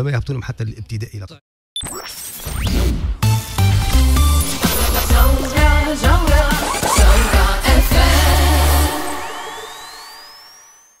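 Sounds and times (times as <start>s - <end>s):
pop jingle with singing: 3.9s - 10.8s
rising synth sweep: 6.7s - 11.0s.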